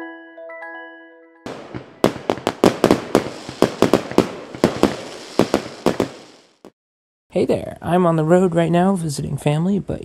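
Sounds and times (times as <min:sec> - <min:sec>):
fireworks bangs: 0:01.5 - 0:06.8
fireworks crackling: 0:01.5 - 0:06.8.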